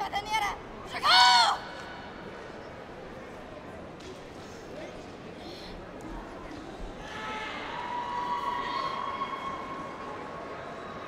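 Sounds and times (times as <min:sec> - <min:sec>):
girl's high-pitched shouted call: 0:00.3 - 0:01.7.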